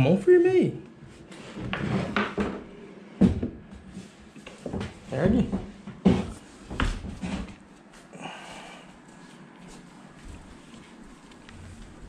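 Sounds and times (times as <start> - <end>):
quiet shuffling: 3.8 - 12.0.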